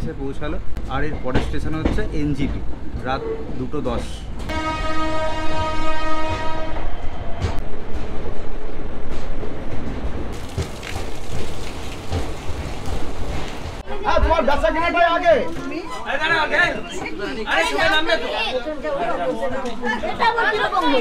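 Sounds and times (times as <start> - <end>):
train rumbling: 0.0 - 17.7
train horn blast: 4.5 - 7.2
wheels clacking over rail joints: 7.4 - 13.8.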